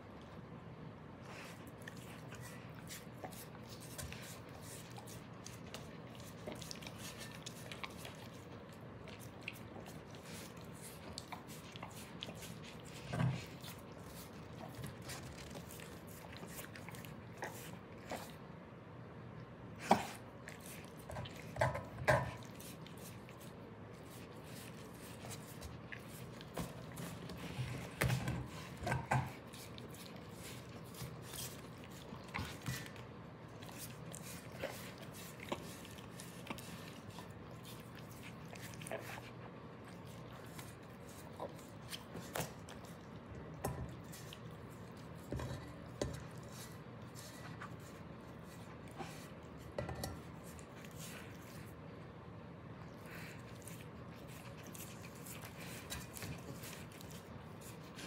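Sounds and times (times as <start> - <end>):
dog licking skillet: 1.3 - 18.5, 19.8 - 51.9, 52.8 - 58.0.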